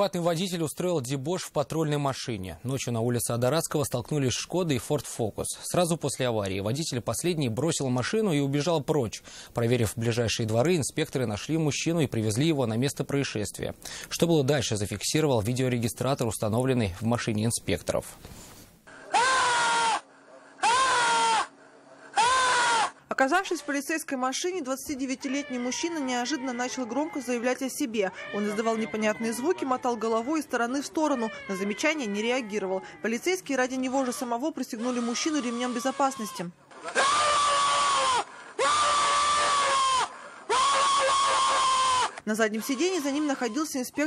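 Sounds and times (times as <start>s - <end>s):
man wailing: 33.8s - 43.6s.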